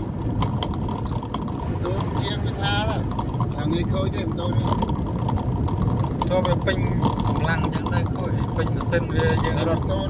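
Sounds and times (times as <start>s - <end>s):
car engine and road rumble: 0.0s - 10.0s
tyres on wet road: 0.0s - 10.0s
people talking: 1.8s - 4.8s, 6.2s - 10.0s.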